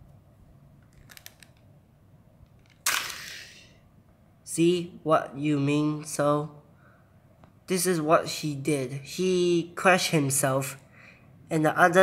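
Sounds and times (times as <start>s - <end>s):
plastic toys crashing on tile floor: 2.8s - 3.6s.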